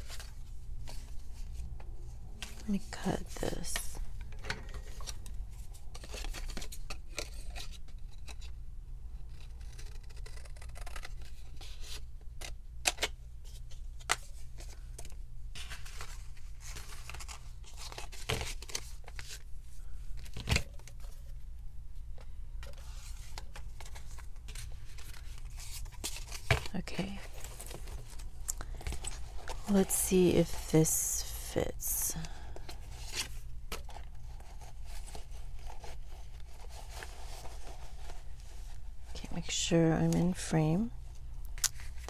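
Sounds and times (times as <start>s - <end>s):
scissors cutting paper: 9.3s - 11.5s
paper rustling: 13.4s - 19.5s, 22.6s - 30.7s.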